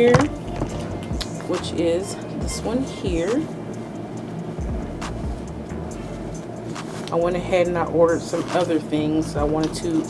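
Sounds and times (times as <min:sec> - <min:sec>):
music with deep bass: 0:00.0 - 0:10.0.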